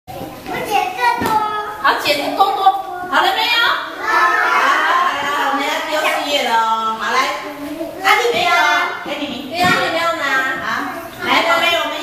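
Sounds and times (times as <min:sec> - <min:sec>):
young children chattering: 0:00.1 - 0:12.0.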